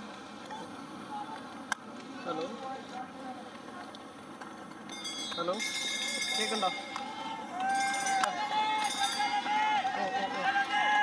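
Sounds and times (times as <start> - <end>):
people shouting long calls: 6.9 - 11.0.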